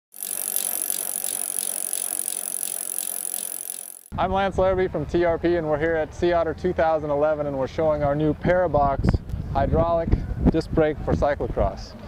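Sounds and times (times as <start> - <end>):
bicycle wheel ticking rattle: 0.1 - 4.1.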